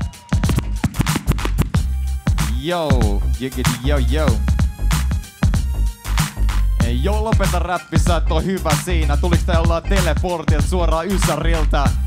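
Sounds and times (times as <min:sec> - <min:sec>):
hip-hop beat: 0:00.0 - 0:12.0
turntable scratching: 0:00.3 - 0:01.8.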